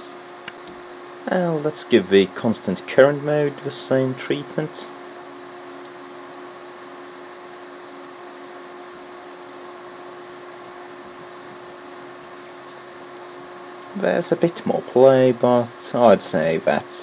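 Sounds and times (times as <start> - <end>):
cooling fan whir and hum: 0.0 - 17.0.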